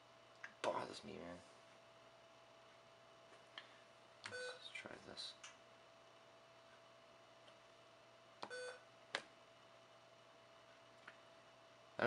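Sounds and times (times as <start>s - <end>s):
faint hum: 0.0s - 12.0s
short electronic beep: 8.5s - 8.8s.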